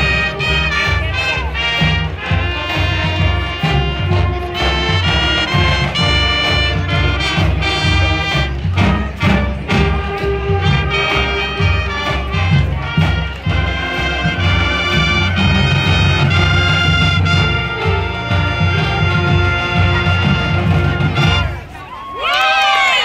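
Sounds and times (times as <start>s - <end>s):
steady drum beat: 0.0s - 21.7s
brass band playing: 0.0s - 21.9s.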